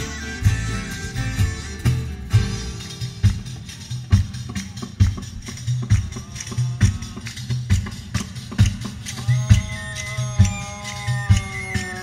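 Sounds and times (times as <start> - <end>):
folk band playing: 0.0 - 12.0
steady drum beat: 0.0 - 12.0.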